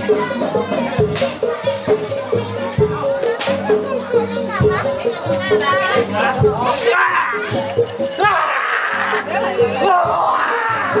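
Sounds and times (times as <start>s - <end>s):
gamelan music: 0.0s - 11.0s
people talking and calling: 0.0s - 11.0s.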